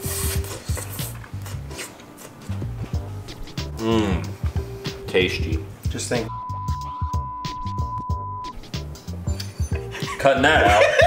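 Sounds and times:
background music with bass beat: 0:02.6 - 0:11.0.

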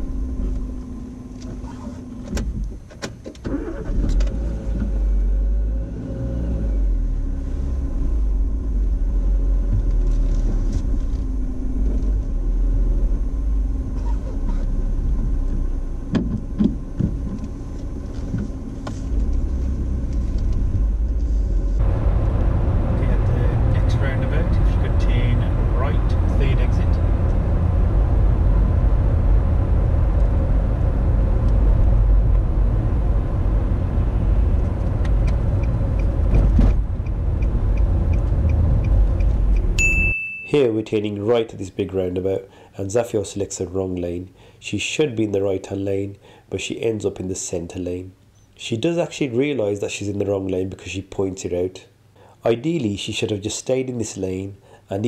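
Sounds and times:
tyre road noise: 0:00.0 - 0:42.6
car engine and cabin noise: 0:00.0 - 0:44.2.

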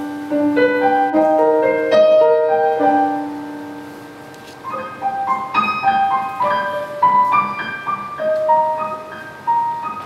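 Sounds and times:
slow jazz piano notes: 0:00.0 - 0:10.0.

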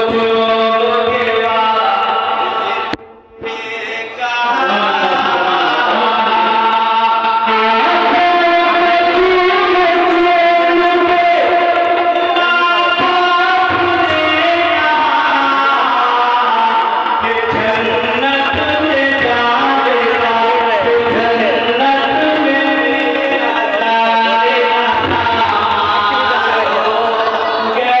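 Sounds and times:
man singing into a microphone: 0:00.0 - 0:28.0.

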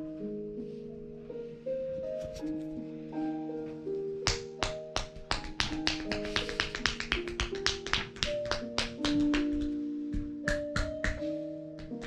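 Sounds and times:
soft background music: 0:00.0 - 0:12.0
hands slapping bare skin: 0:04.2 - 0:12.0.

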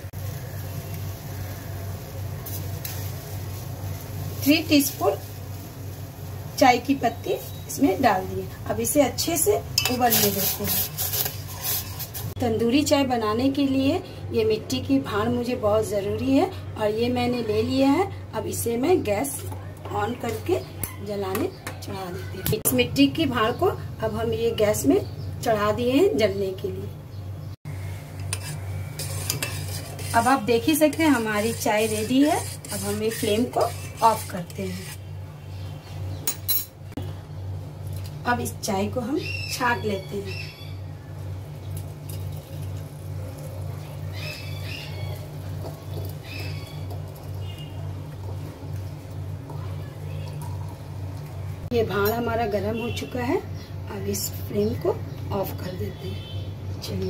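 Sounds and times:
spoon clinking against pot: 0:09.8 - 0:10.3
spoon stirring in metal pot: 0:09.8 - 0:12.4, 0:28.2 - 0:35.0.

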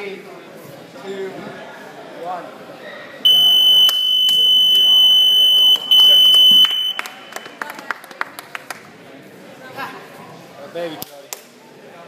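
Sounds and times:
timer buzzer beeps: 0:03.3 - 0:07.0.

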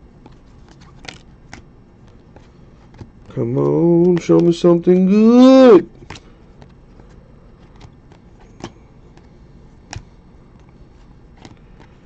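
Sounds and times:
cards handled in hands: 0:00.0 - 0:12.0.

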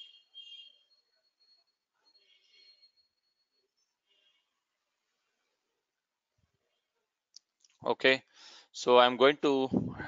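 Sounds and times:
man speaking: 0:07.8 - 0:10.0.

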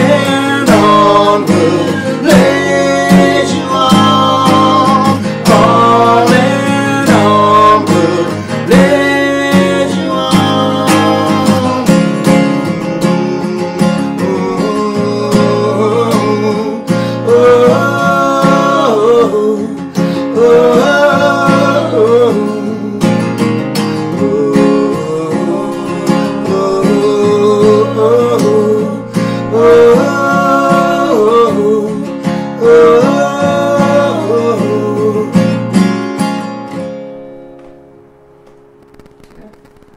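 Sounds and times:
men singing wordless melody: 0:00.0 - 0:23.3, 0:23.9 - 0:35.7
acoustic guitar strummed: 0:00.0 - 0:39.9.

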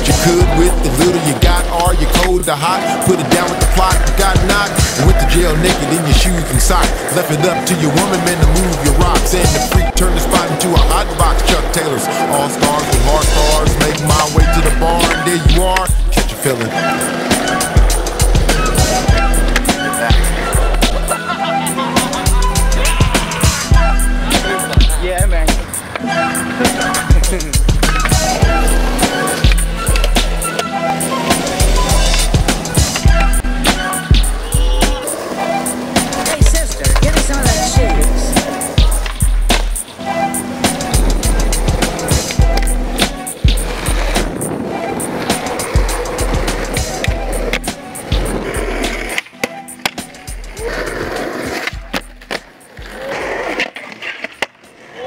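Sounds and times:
skateboard clacks: 0:00.0 - 0:02.6, 0:03.2 - 0:11.8, 0:12.4 - 0:21.2, 0:21.8 - 0:39.9, 0:40.6 - 0:55.0
hip hop beat with heavy bass: 0:00.0 - 0:53.6
skateboard wheels rolling on concrete: 0:00.0 - 0:55.0.

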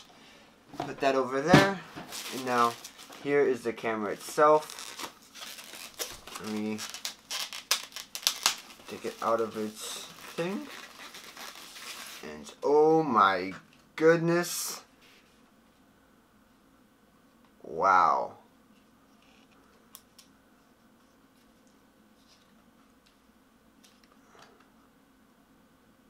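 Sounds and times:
plastic packaging crinkling: 0:01.9 - 0:03.5, 0:04.1 - 0:12.3.

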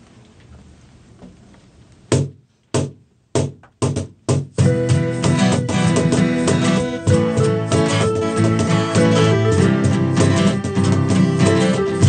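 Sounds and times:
sharp percussive strikes: 0:03.4 - 0:12.0
acoustic band playing: 0:04.6 - 0:12.0.

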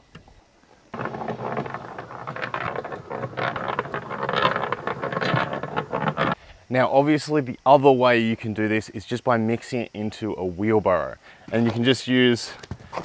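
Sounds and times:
cement mixer churning: 0:01.0 - 0:06.4.

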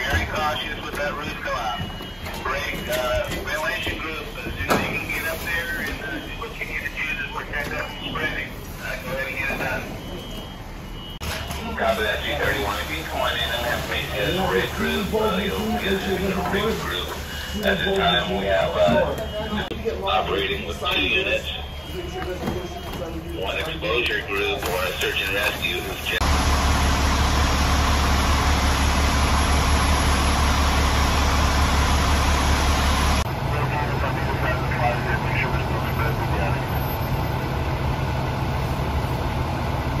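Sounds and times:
voice on radio: 0:00.0 - 0:10.3, 0:11.6 - 0:26.3, 0:33.2 - 0:36.8
fire engine rumble: 0:00.0 - 0:40.0
high-pitched electronic alarm beeping: 0:09.5 - 0:11.5, 0:16.5 - 0:23.1.

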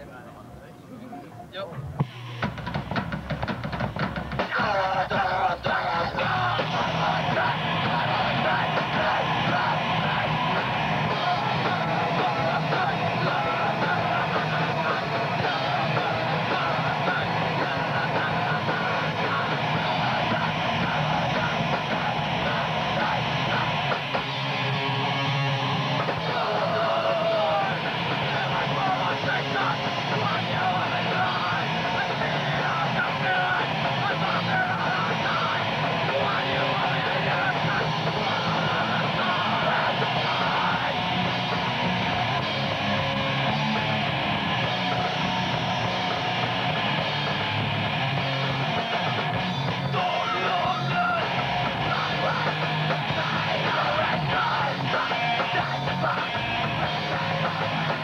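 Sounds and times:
punk band playing live: 0:01.8 - 0:58.0.

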